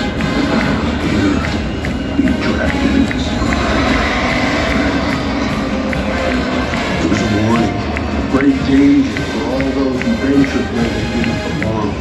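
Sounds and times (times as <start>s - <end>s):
stadium sound system roaring: 0.0s - 12.0s.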